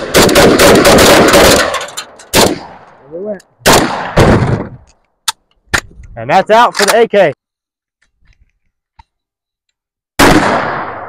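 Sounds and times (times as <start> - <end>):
rifle shots: 0.0 - 2.9, 3.6 - 4.8, 10.2 - 11.0
sharp gunshot cracks: 2.3 - 2.9, 3.6 - 4.7, 10.2 - 11.0.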